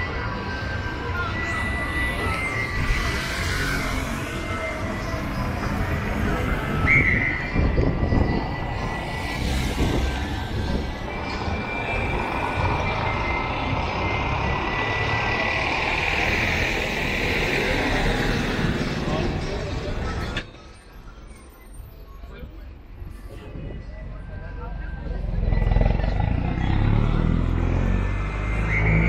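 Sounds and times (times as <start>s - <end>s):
bus running close by: 0.0s - 22.0s, 22.9s - 29.0s
crowd voices: 0.0s - 29.0s
traffic rumble: 0.0s - 29.0s.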